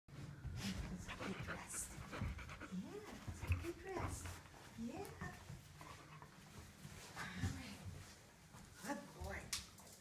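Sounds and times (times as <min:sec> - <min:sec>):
dog panting: 0:00.4 - 0:07.2.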